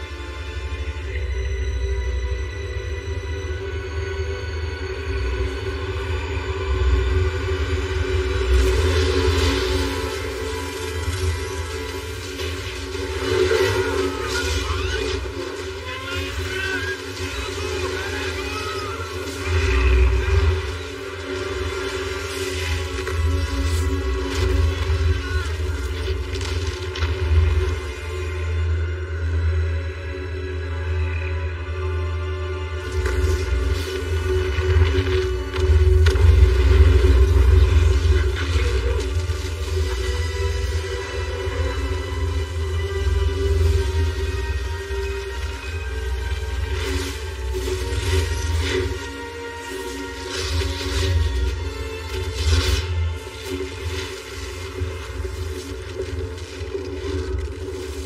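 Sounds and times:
dramatic film score music: 0.0 - 58.0.

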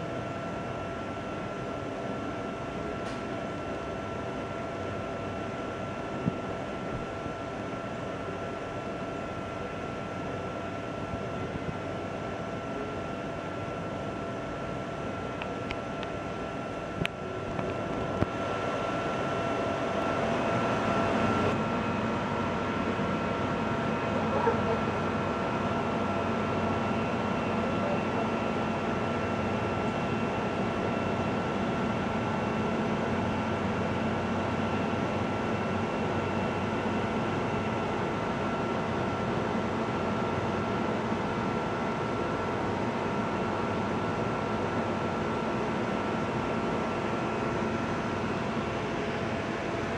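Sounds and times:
steady background hum: 0.0 - 49.9.

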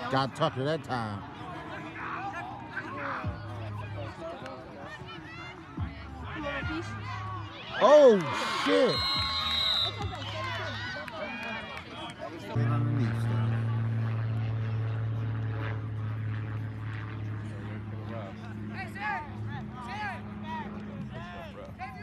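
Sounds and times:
low engine hum: 12.6 - 21.8.

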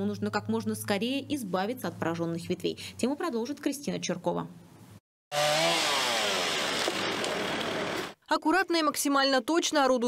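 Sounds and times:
chainsaw engine running: 5.3 - 8.2.

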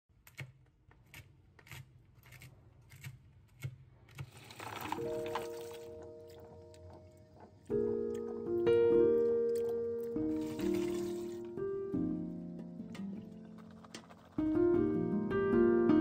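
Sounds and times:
held musical notes: 5.0 - 16.0.

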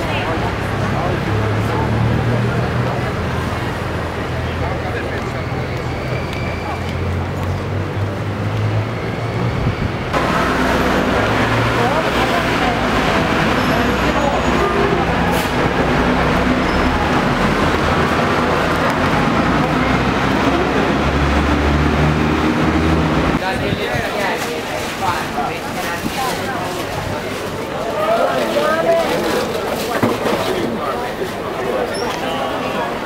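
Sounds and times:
road traffic: 0.0 - 33.0
voices of passers-by: 0.0 - 33.0.

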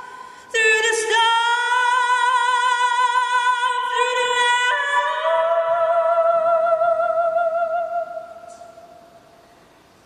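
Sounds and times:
woman singing: 0.0 - 9.0.

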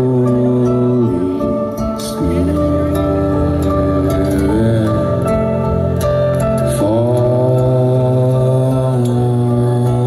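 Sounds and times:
man singing a long held note: 0.0 - 5.5, 6.7 - 10.0
band playing: 0.0 - 10.0
steady low bass: 0.0 - 10.0.

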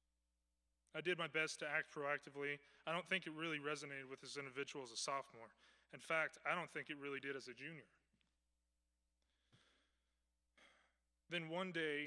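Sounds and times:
man breathing into microphone: 9.2 - 10.0.

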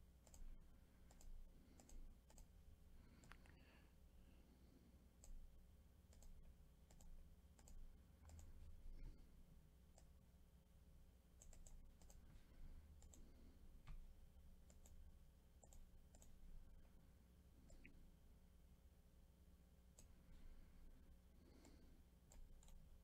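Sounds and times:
mouse and keyboard clicking: 0.2 - 0.5, 1.1 - 2.5, 3.1 - 3.6, 6.1 - 8.6, 11.4 - 12.2, 13.0 - 14.0, 15.6 - 16.4, 21.6 - 22.8.

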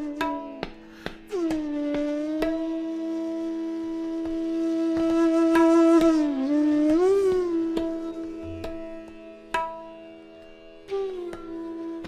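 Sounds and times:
bamboo flute long note: 0.0 - 9.9, 10.9 - 12.0
tabla strokes: 0.0 - 12.0.

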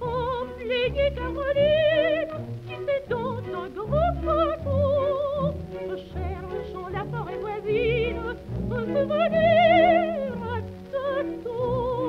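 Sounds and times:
instrumental accompaniment: 0.0 - 12.0
soprano singing an aria: 0.0 - 12.0.

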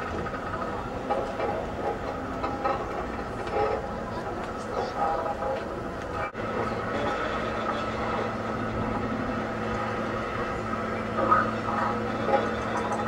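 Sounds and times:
steady low hum: 0.0 - 13.0
experimental drone music: 6.3 - 13.0.

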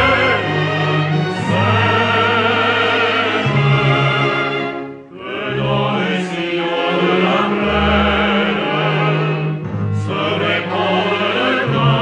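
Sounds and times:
choir singing held notes: 0.0 - 12.0
low orchestral accompaniment: 0.0 - 12.0.

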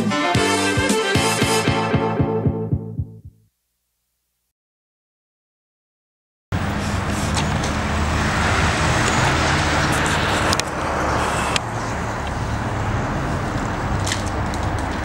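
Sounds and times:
street traffic ambience: 6.5 - 15.0.

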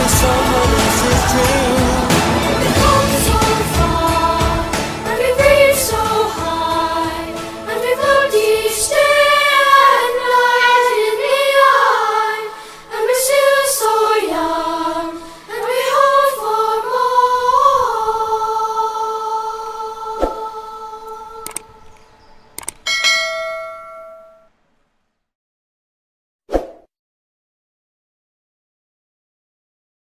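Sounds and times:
choir of young voices singing: 0.0 - 22.0
mouse clicks: 21.4 - 22.9
bright bell ding: 22.9 - 24.5.

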